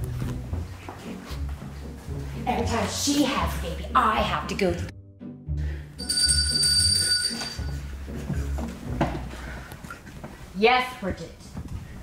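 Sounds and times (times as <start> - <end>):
bell ringing: 6.0 - 7.9.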